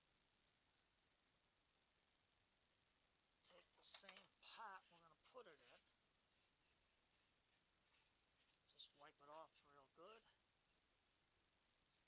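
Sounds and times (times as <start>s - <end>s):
man speaking faintly: 8.7s - 10.4s.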